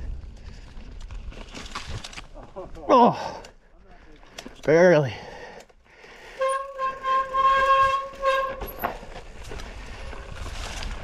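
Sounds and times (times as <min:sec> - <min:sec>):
bike disc brakes squealing: 0:06.4 - 0:09.0.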